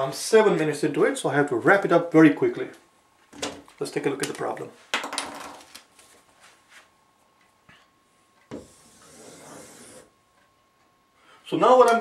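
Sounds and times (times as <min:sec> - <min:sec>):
marker scratching on whiteboard: 0:08.6 - 0:10.1.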